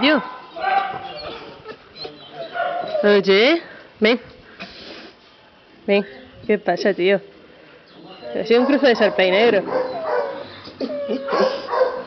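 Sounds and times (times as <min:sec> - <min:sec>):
dog whining: 0:08.7 - 0:12.0.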